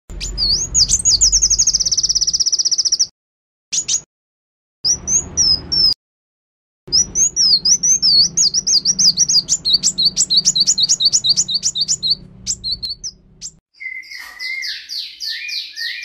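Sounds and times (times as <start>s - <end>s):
bird singing high thin notes: 6.9s - 16.0s.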